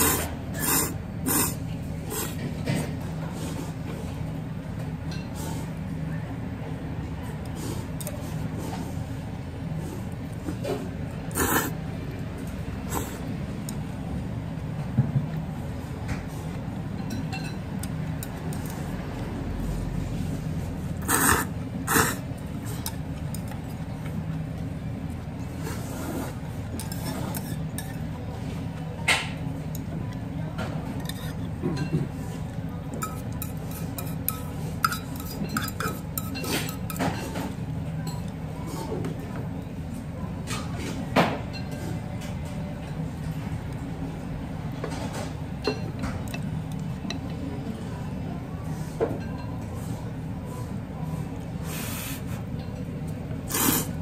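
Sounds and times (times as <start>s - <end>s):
noodles slurped: 0.0s - 2.4s, 11.3s - 11.8s, 21.0s - 22.3s
utensils clinking on porcelain bowl: 17.0s - 17.7s, 33.0s - 38.3s, 41.5s - 41.9s.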